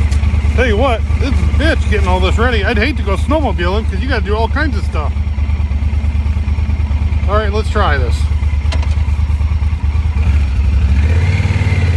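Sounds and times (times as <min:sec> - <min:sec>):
motorcycle engine idling: 0:00.0 - 0:11.9.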